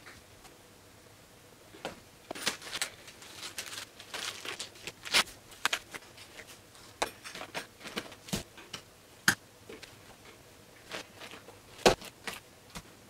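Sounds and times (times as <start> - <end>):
packaging rustling: 2.3 - 6.5.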